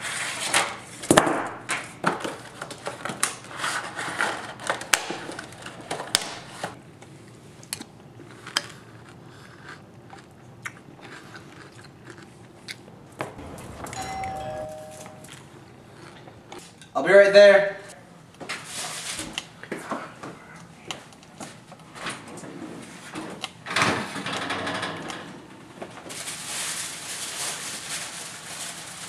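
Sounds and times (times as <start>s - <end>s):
person chewing: 7.6s - 12.9s, 15.9s - 16.7s
two-note doorbell chime: 13.4s - 15.4s
aluminium foil crinkling: 26.0s - 29.0s.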